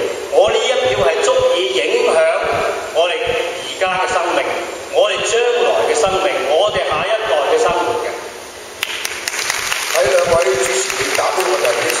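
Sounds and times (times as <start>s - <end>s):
hands clapping: 8.8s - 12.0s
person speaking: 9.9s - 12.0s.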